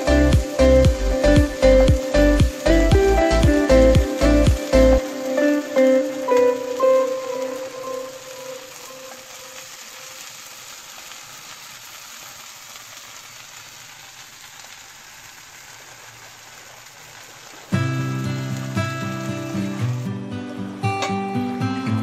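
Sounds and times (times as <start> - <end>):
guitar music: 0.0 - 9.6, 17.7 - 22.0
bread sizzling in oil: 0.0 - 20.9.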